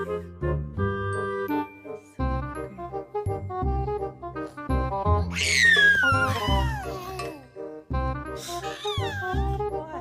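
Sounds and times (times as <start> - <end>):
background music with steady beat: 5.9 - 10.0.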